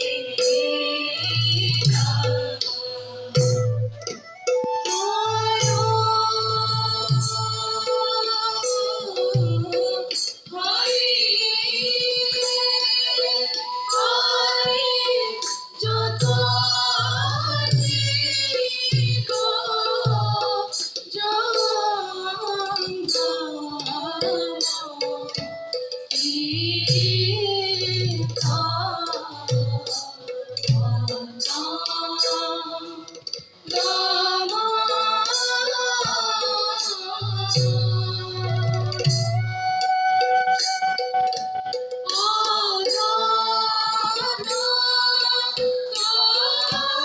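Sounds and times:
small hand cymbals: 0.0s - 47.0s
group of voices singing in unison: 4.7s - 39.5s, 42.1s - 47.0s.

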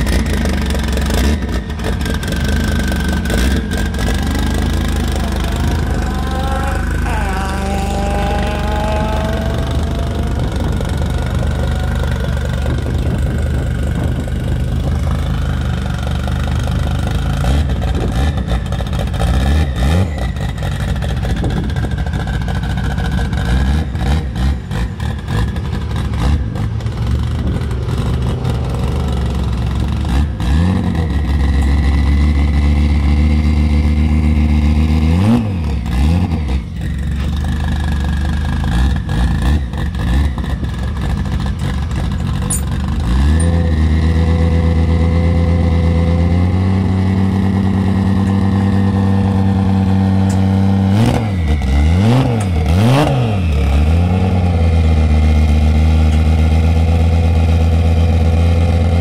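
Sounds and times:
car engine idling: 0.0s - 35.1s, 36.6s - 59.0s.

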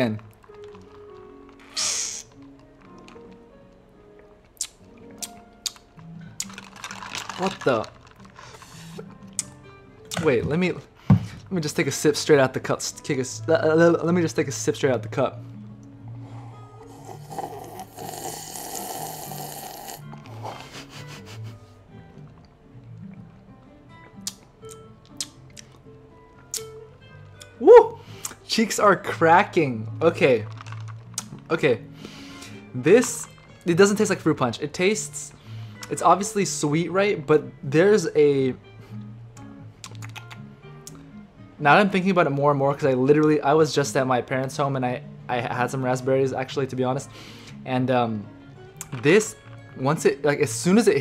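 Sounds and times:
slurping iced drink: 0.4s - 3.3s, 6.4s - 9.1s, 16.2s - 21.0s
slurp through a drinking straw: 16.4s - 20.9s.

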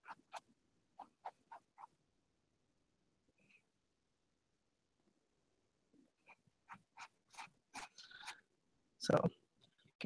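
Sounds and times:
paintbrush dabbing: 0.0s - 2.1s, 6.0s - 8.6s.

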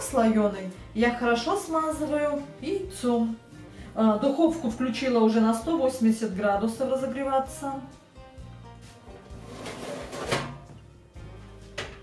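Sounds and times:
quiet background music: 0.0s - 12.0s.

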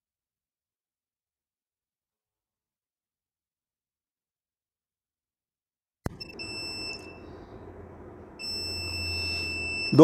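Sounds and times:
high-pitched warning beeps: 6.1s - 7.4s, 8.4s - 10.0s
low hum: 6.1s - 10.0s.

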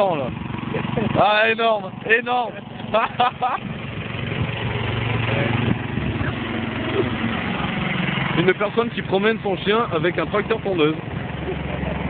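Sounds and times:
riding lawn mower engine: 0.0s - 12.0s.

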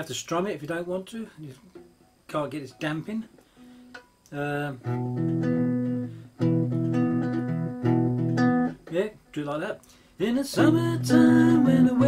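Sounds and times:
cigar box guitar chords ringing: 1.8s - 12.0s.

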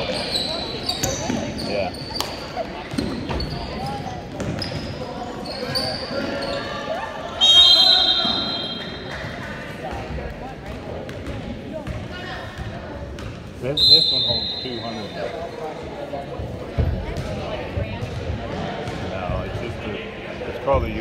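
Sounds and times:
sneakers squeaking: 0.0s - 10.1s, 11.1s - 15.9s
background chatter: 0.0s - 21.0s
referee's whistle blast: 7.4s - 9.0s, 13.8s - 15.2s.

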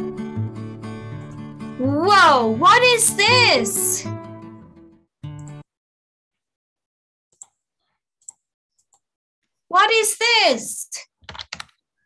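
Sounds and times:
person sing-song voice: 1.8s - 4.1s.

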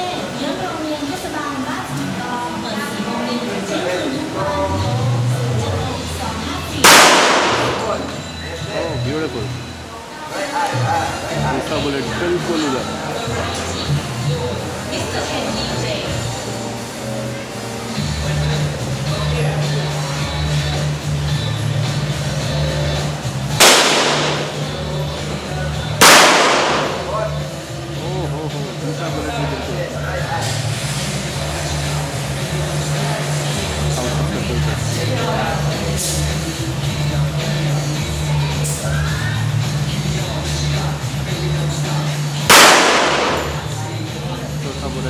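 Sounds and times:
pistol shots: 6.8s - 8.0s, 23.6s - 24.7s, 26.0s - 27.1s, 42.5s - 43.7s.

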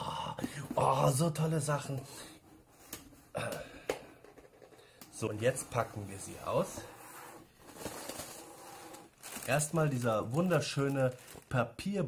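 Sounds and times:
packing rustling: 7.5s - 11.6s.

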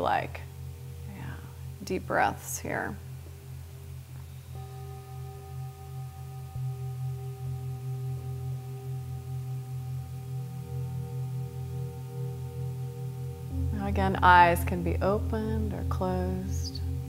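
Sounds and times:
singing bowl ringing: 0.0s - 17.0s.

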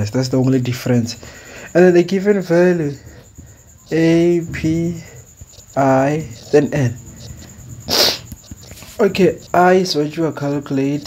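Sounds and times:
sharp hissing breath: 1.2s - 1.8s, 7.1s - 9.0s
faint ticks: 5.0s - 9.7s.

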